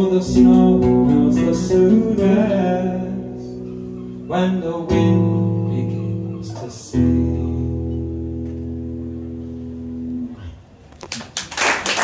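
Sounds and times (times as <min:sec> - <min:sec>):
audience applause: 0:11.1 - 0:12.0.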